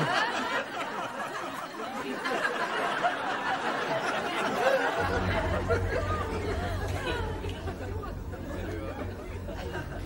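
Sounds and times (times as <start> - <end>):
indistinct voices chattering: 0.0 - 10.0
steady low hum: 5.0 - 10.0.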